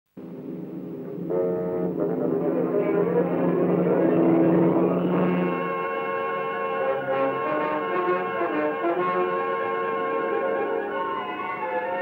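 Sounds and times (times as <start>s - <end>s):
orchestral film title music: 1.3s - 12.0s.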